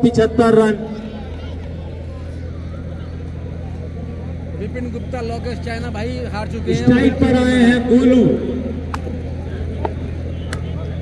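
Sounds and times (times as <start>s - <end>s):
faint distant voices: 0.0s - 11.0s
steady low hum: 0.0s - 11.0s.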